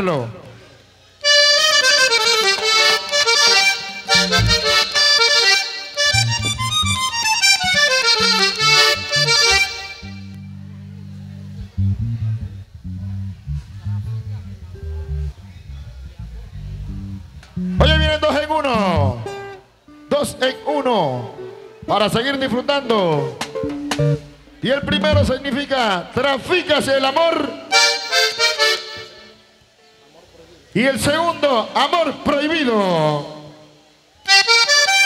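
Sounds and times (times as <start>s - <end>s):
button accordion playing fast: 1.2s - 10.5s, 17.6s - 18.6s, 24.1s - 25.6s, 27.7s - 29.4s, 34.3s - 35.0s
bass line: 1.2s - 19.8s, 22.0s - 26.2s.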